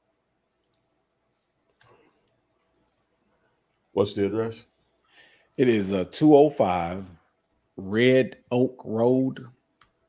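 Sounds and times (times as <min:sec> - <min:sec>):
computer mouse clicks: 0:00.6 - 0:01.0, 0:01.7 - 0:03.9, 0:09.6 - 0:10.0.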